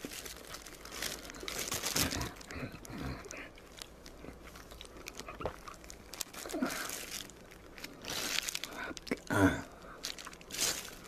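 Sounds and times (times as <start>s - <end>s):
chewing and crunching food: 0.0s - 11.0s.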